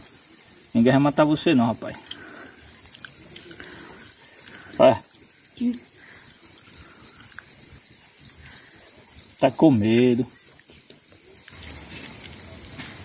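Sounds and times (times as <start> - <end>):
insects chirring: 0.0 - 13.0.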